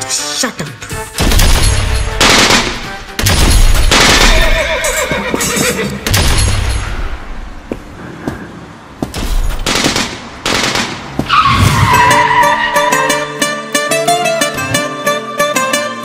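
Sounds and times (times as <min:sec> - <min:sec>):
tyres squealing: 0:04.1 - 0:06.1, 0:11.2 - 0:13.5.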